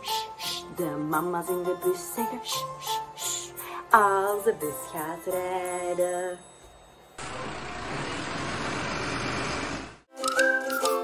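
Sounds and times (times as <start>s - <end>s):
jingle with whistled melody: 10.2s - 11.0s.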